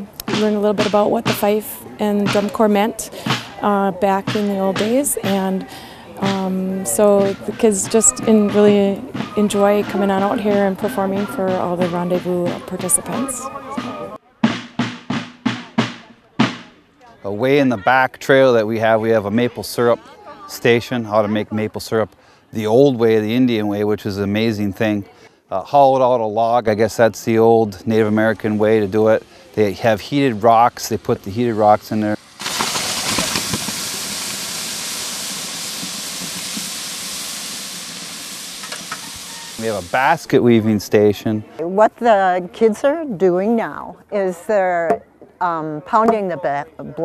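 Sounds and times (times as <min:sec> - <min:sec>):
field drum strokes: 0:00.0 - 0:16.9, 0:27.7 - 0:40.9
hot rock hissing in boiling sap: 0:27.2 - 0:41.0
crackles: 0:28.0 - 0:40.4.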